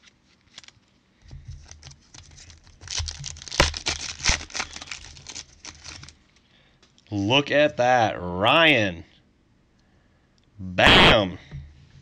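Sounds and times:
foil wrapper crinkling: 0:00.0 - 0:06.5.

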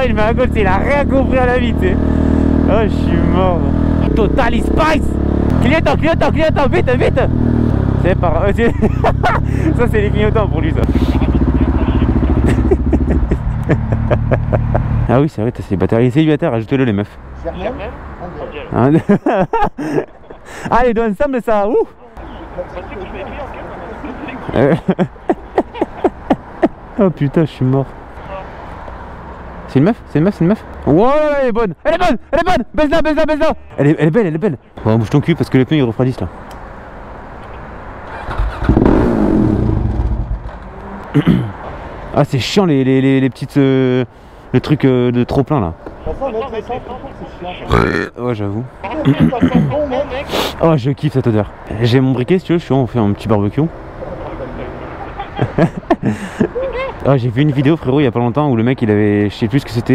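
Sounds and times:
motor vehicle engine: 0:00.0 - 0:15.3, 0:24.5 - 0:27.1, 0:36.4 - 0:42.2
man laughing in squeals: 0:08.7 - 0:09.8, 0:12.3 - 0:14.8, 0:24.2 - 0:26.8, 0:54.5 - 0:57.1.

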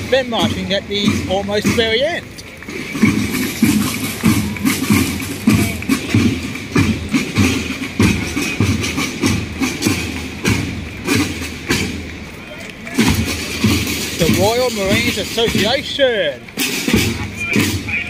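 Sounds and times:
marching snare and bass drums: 0:00.0 - 0:18.0.

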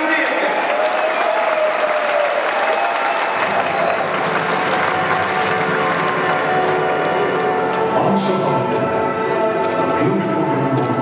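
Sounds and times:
audience applauding: 0:00.0 - 0:08.0.

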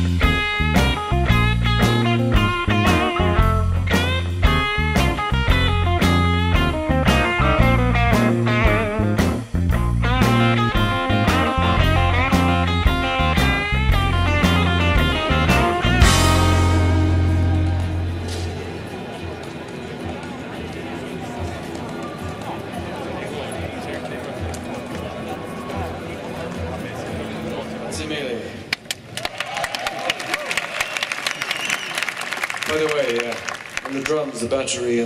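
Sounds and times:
bass line: 0:00.0 - 0:18.9
electric guitar with vibrato: 0:00.0 - 0:19.4
drum beat: 0:00.1 - 0:18.7.

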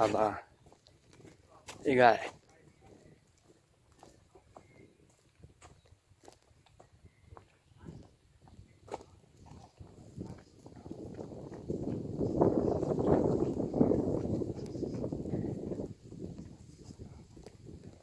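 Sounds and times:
footsteps on paved path: 0:00.0 - 0:18.0.

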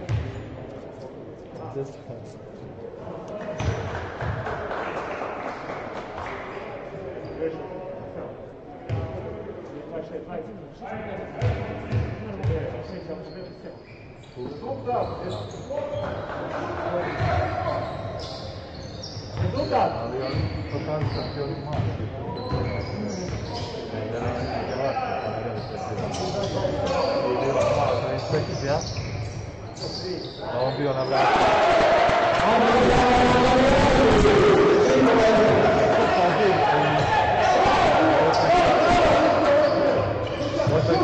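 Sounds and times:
shouted voices: 0:31.1 - 0:40.1.

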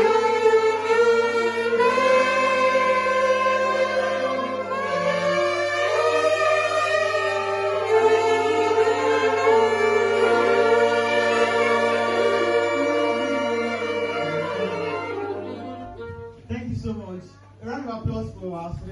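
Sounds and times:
saxophone ensemble chords: 0:00.0 - 0:17.7
person speaking: 0:16.3 - 0:18.9.

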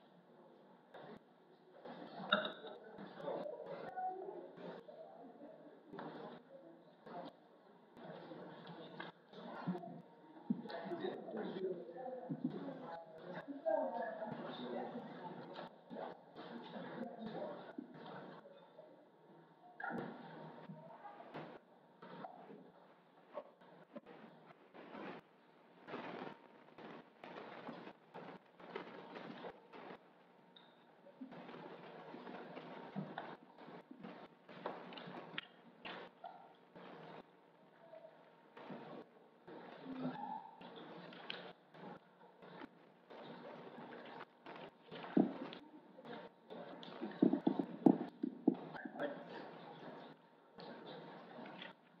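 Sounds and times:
soft footsteps: 0:20.0 - 0:37.2, 0:40.7 - 0:51.8
shuffling and rustling: 0:23.3 - 0:30.2.

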